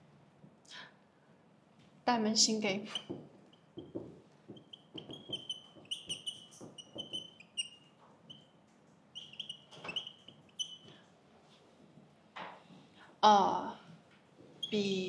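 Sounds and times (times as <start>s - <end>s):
marker squeaking on whiteboard: 2.8s - 11.1s
marker tip tapping: 2.9s - 7.8s.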